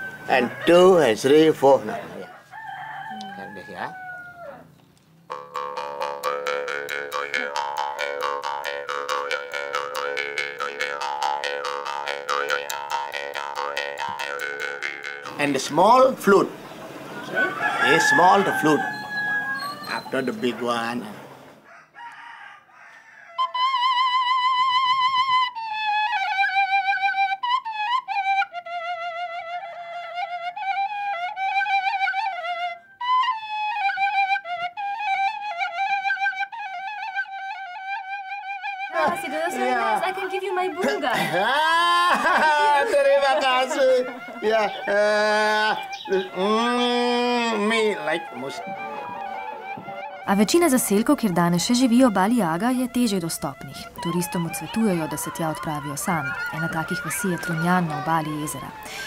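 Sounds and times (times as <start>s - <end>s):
bamboo flute melody: 0.0s - 4.1s, 5.3s - 16.5s, 17.2s - 21.0s, 23.3s - 59.0s
jaw harp twanging over a drone: 5.3s - 15.4s.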